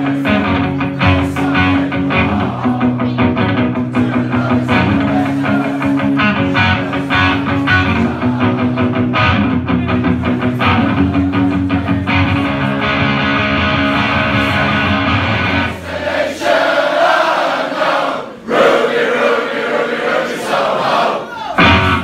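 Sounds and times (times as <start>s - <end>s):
crowd shouting: 0.0s - 9.5s, 14.0s - 22.0s
electric guitar strummed hard: 0.0s - 15.8s, 21.6s - 22.0s
crowd singing along: 0.0s - 22.0s.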